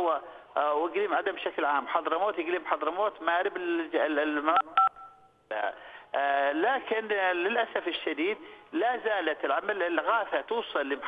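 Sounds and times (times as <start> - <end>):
telephone keypad tone: 4.6 - 5.3.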